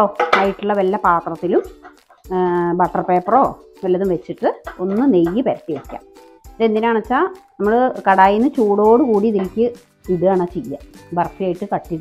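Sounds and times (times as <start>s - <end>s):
person speaking: 0.0s - 6.0s
background music: 0.0s - 12.0s.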